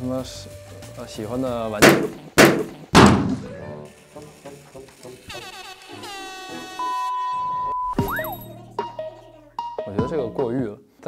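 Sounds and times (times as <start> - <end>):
high beep: 6.8 - 8.5.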